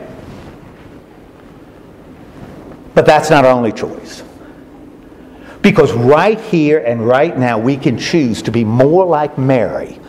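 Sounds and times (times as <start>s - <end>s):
faint room tone hiss: 0.0s - 10.0s
man speaking: 2.9s - 4.4s, 5.6s - 10.0s.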